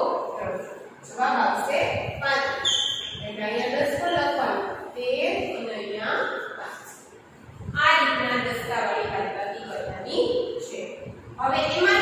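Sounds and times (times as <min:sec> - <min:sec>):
woman speaking: 0:00.0 - 0:07.1, 0:07.7 - 0:12.0.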